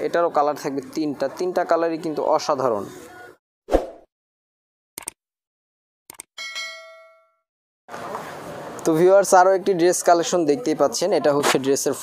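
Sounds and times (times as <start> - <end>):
bell-like notification chime: 6.4 - 7.4.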